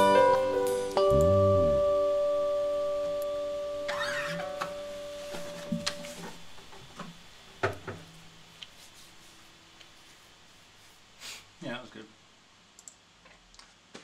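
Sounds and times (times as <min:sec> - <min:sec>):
band final chord ringing: 0:01.0 - 0:02.5.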